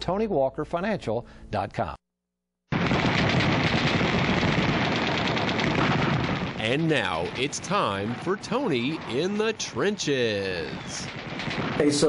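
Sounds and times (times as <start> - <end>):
rapid machine-gun fire: 2.7 - 12.0.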